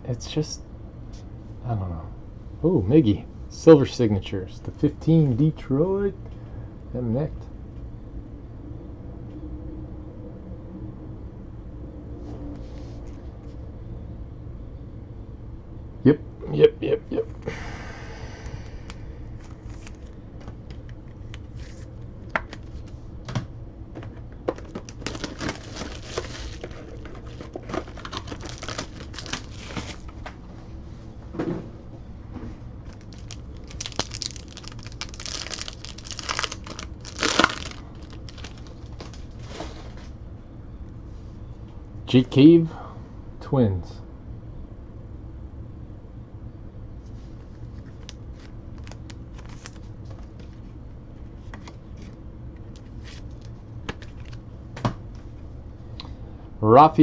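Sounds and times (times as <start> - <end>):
low background hum: 0.0 - 57.0
box clicks and rustles: 24.4 - 30.2, 32.9 - 39.2
foil pack crinkling and tearing: 24.5 - 30.2, 32.9 - 39.4, 48.0 - 49.9.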